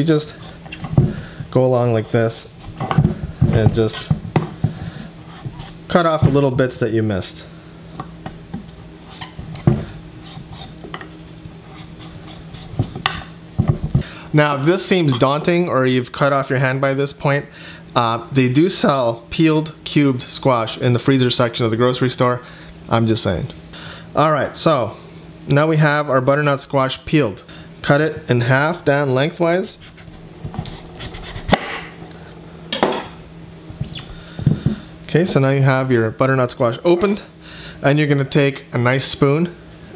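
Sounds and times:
knife cutting on wooden board: 0:11.6 - 0:13.2.

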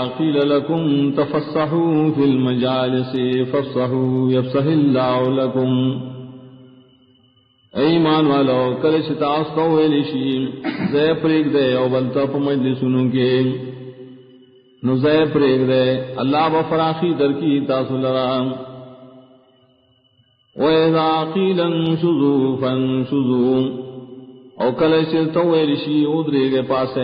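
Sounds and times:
man speaking: 0:00.0 - 0:06.0, 0:07.8 - 0:13.6, 0:14.8 - 0:18.6
man's voice holding a syllable: 0:00.0 - 0:06.0, 0:07.8 - 0:13.6, 0:14.8 - 0:18.6, 0:20.6 - 0:23.8, 0:24.6 - 0:27.0
man chanting recitation: 0:00.0 - 0:06.1, 0:07.8 - 0:13.7, 0:14.8 - 0:18.8, 0:20.6 - 0:23.8, 0:24.6 - 0:27.0.

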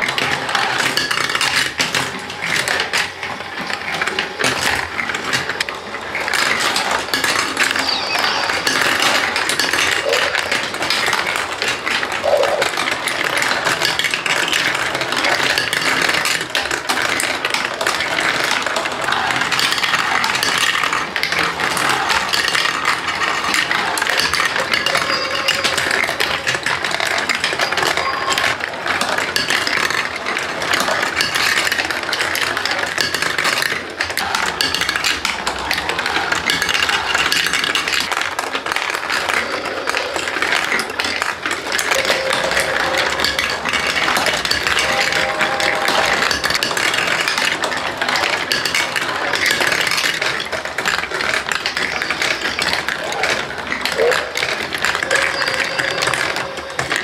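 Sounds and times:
plastic marbles rolling and clattering: 0:00.0 - 0:57.0.

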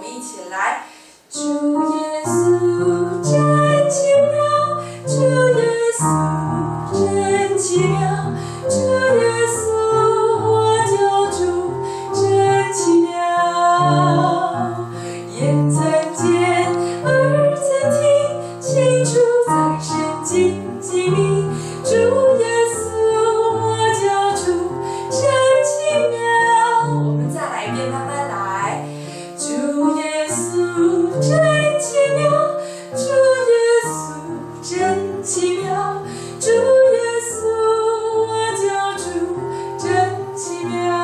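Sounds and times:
piano accompaniment: 0:00.0 - 0:41.0
woman singing a hymn: 0:00.0 - 0:41.0.

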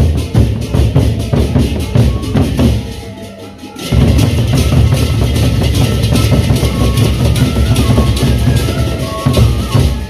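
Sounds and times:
barrel drums beaten fast: 0:00.0 - 0:03.0, 0:03.9 - 0:10.0.

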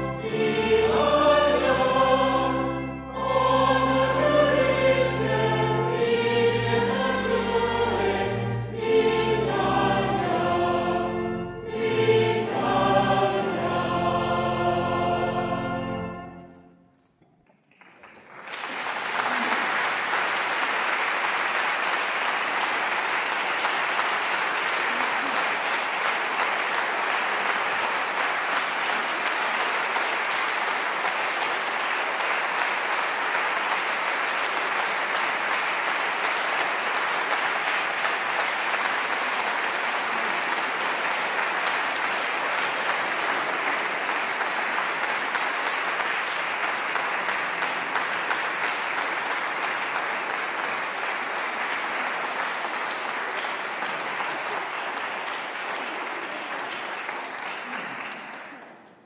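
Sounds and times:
audience applauding: 0:17.4 - 0:59.0.

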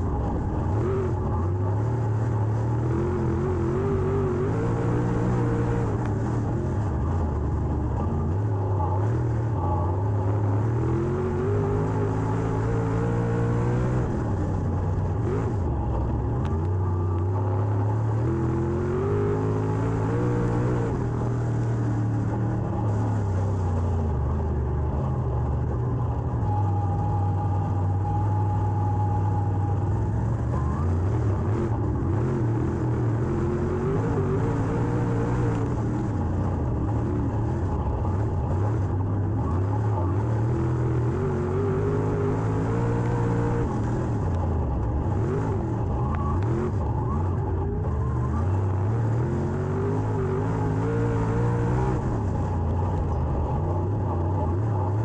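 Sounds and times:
race car engine revving: 0:00.0 - 0:25.7, 0:29.7 - 0:55.0.

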